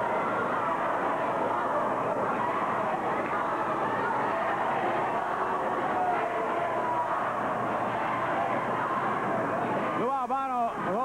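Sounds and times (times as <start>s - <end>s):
crowd of many voices: 0.0s - 11.0s.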